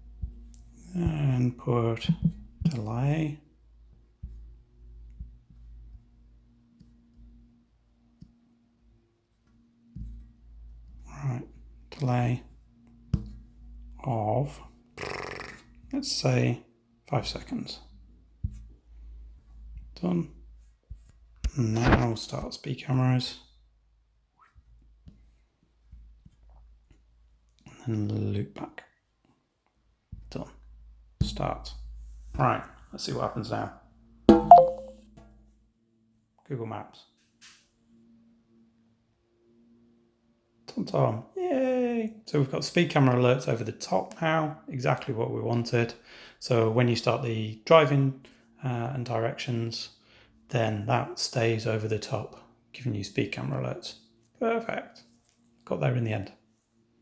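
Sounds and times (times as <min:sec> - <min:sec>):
low steady hum: 0:00.0 - 0:14.9
fingertip taps on touchscreen: 0:34.3 - 0:34.9
phone electronic chime: 0:34.3 - 0:35.0.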